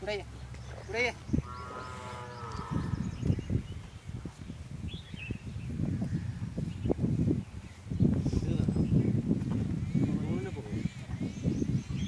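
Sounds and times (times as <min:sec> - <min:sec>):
low thumps and scuffs: 0:08.0 - 0:09.8.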